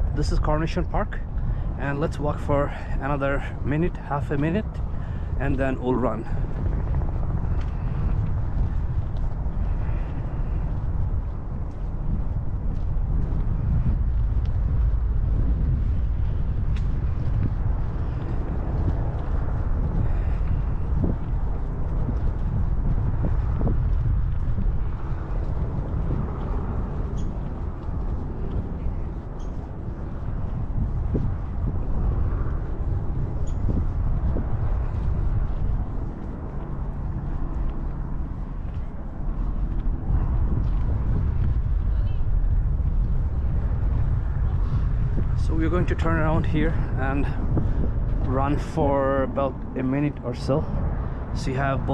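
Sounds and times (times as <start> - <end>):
wind rumble on microphone: 0.0 - 51.9.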